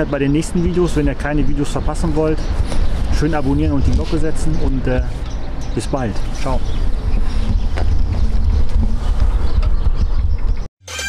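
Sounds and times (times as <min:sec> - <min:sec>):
wind buffeting microphone: 0:00.0 - 0:10.7.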